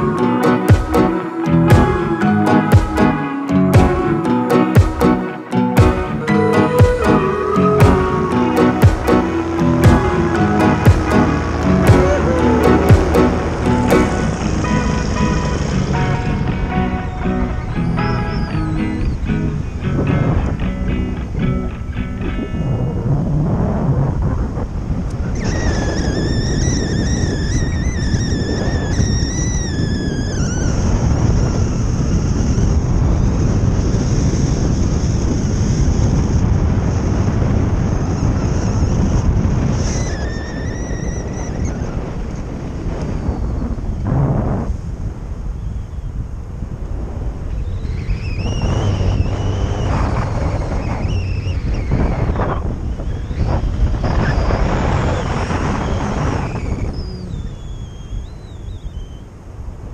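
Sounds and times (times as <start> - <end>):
two-stroke engine drone: 0.0 - 22.0, 25.1 - 44.0, 47.6 - 59.0
high wavering whine: 0.0 - 24.4, 25.0 - 59.5
wind rushing over microphone: 0.0 - 59.9.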